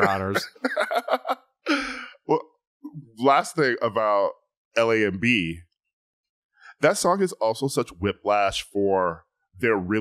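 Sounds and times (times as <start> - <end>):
man speaking: 0.0 - 0.8, 1.7 - 5.6, 6.7 - 10.0
man gasping: 1.7 - 2.3.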